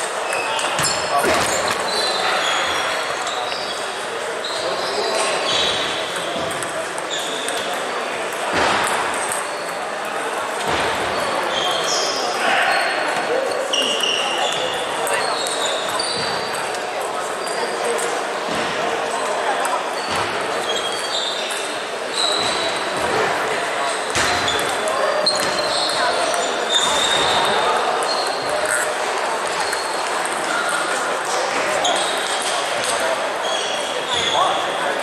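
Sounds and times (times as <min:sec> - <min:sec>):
background chatter: 0:00.0 - 0:35.0
table tennis balls hitting: 0:05.8 - 0:11.2.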